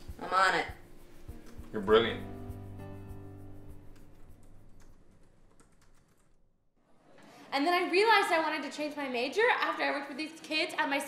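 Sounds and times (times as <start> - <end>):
typing on laptop keyboard: 4.1 - 6.4.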